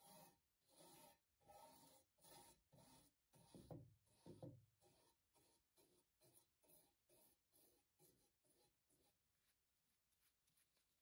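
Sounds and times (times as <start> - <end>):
paintbrush rubbing strokes on metal: 0.0 - 11.0.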